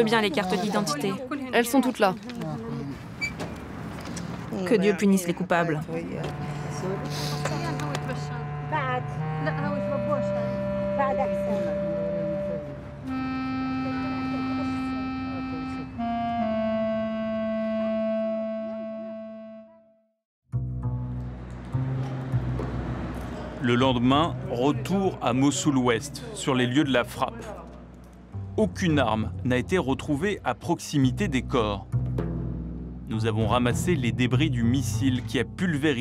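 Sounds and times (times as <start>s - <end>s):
people talking: 0.0s - 2.9s, 4.5s - 12.8s, 13.4s - 16.0s, 23.6s - 27.7s, 28.6s - 31.8s, 33.1s - 36.0s.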